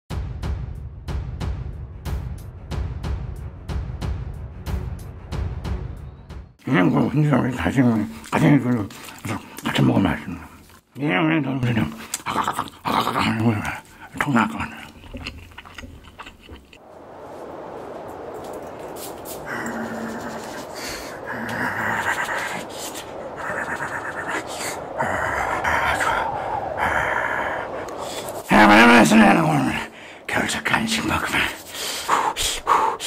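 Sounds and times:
man making wordless vocal sounds: 0:06.7 - 0:15.3, 0:19.5 - 0:31.7.

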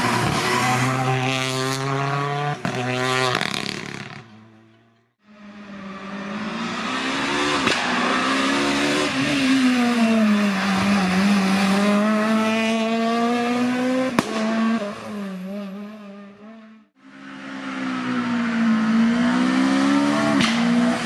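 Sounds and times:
rally car engine passing: 0:00.0 - 0:04.4, 0:05.3 - 0:21.0.

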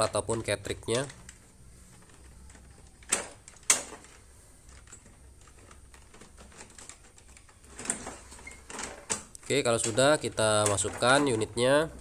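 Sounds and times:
plastic parts clicking: 0:00.0 - 0:12.0
plastic parts rattling: 0:00.0 - 0:12.0.

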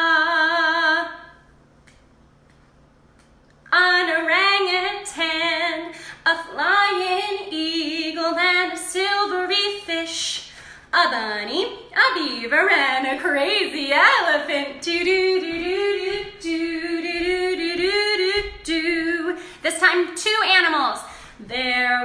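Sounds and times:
woman singing unaccompanied: 0:00.0 - 0:01.4, 0:03.7 - 0:22.0.

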